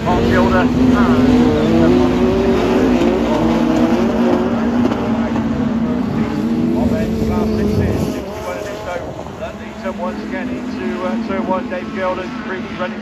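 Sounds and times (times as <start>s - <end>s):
racing car engines droning: 0.0s - 13.0s.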